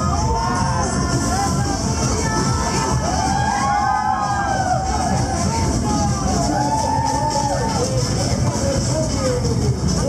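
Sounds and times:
crowd shouting and cheering: 0:00.0 - 0:10.0
loud music: 0:00.0 - 0:10.0.

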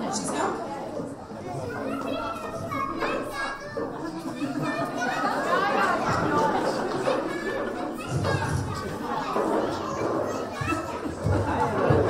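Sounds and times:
adult voices: 0:00.0 - 0:12.0
children chattering: 0:00.0 - 0:12.0.

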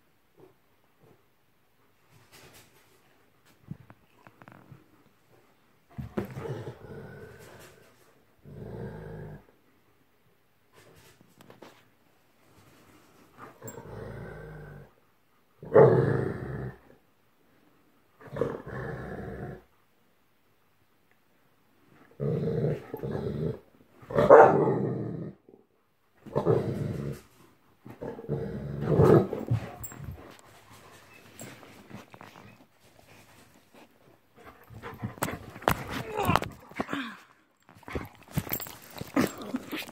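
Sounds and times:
dogs growling: 0:06.0 - 0:09.6, 0:13.5 - 0:15.0, 0:15.6 - 0:17.0, 0:18.2 - 0:19.8, 0:22.0 - 0:25.6, 0:27.9 - 0:33.2, 0:33.8 - 0:39.9.

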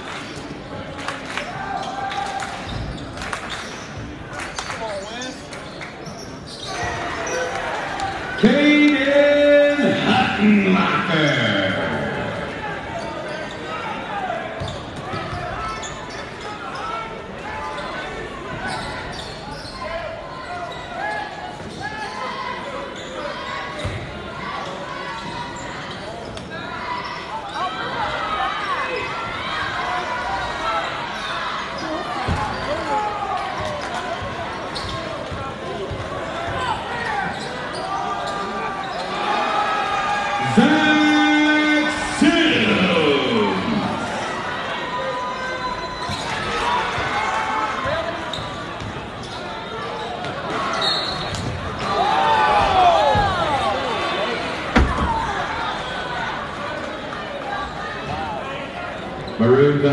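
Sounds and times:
spectator chatter and shouts: 0:00.0 - 0:59.9.

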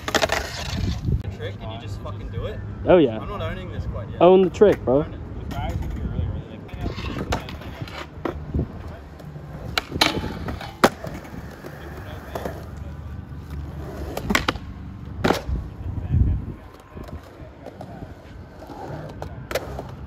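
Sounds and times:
skateboard clacks on ground: 0:00.0 - 0:01.1, 0:04.6 - 0:15.6, 0:16.6 - 0:20.0
skateboard wheels rolling on concrete: 0:00.0 - 0:20.0.

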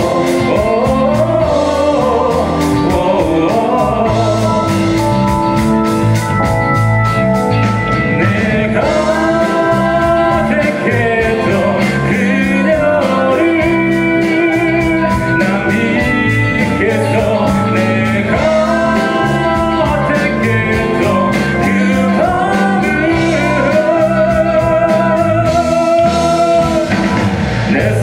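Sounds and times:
male lead vocal: 0:00.0 - 0:05.6, 0:08.0 - 0:28.0
live rock band playing: 0:00.0 - 0:28.0
steady drum beat: 0:00.0 - 0:28.0.

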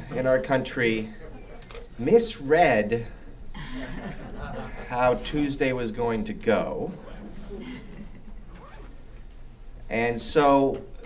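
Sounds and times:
low electrical hum: 0:00.0 - 0:11.0
man speaking: 0:02.0 - 0:03.2, 0:04.7 - 0:07.2.

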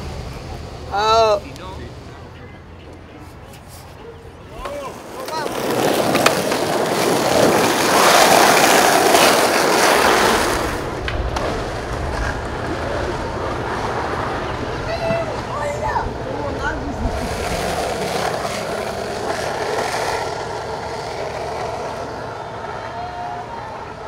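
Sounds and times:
skateboards rolling on asphalt: 0:00.0 - 0:24.0
people calling and whooping: 0:14.3 - 0:17.1, 0:21.5 - 0:24.0.

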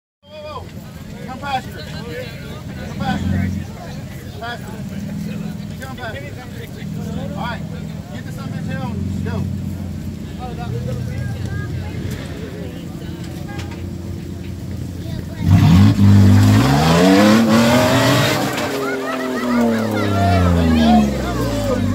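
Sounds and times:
engine idling and revving: 0:00.3 - 0:21.9
tyres spinning in mud: 0:00.3 - 0:21.9.

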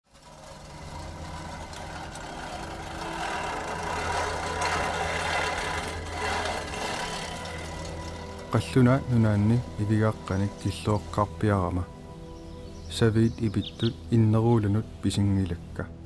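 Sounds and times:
steady low drone: 0:00.1 - 0:16.0.

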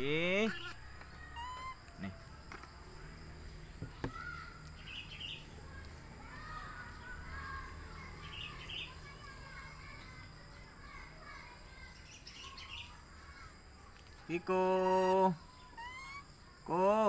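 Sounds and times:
low outdoor background: 0:00.0 - 0:17.0
high animal chirps: 0:00.5 - 0:02.2, 0:11.9 - 0:13.0, 0:14.7 - 0:16.5.

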